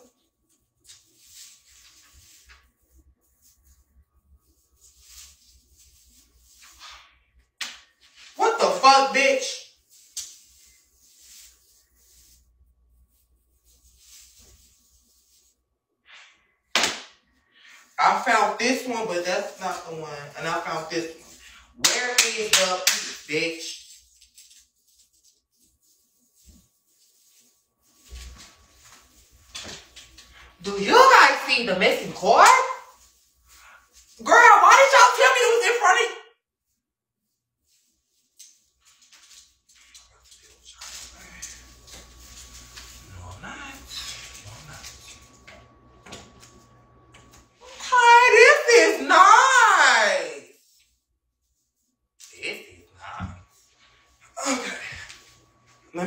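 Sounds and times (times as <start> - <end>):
person speaking: 8.4 - 9.7, 18.0 - 24.0, 30.6 - 33.0, 34.2 - 36.2, 47.6 - 50.6.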